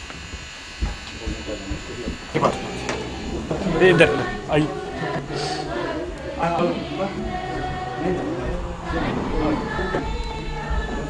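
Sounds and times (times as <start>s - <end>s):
electrical hum: 0.0s - 11.0s
soft low thumps: 0.2s - 11.0s
people's voices: 1.1s - 11.0s.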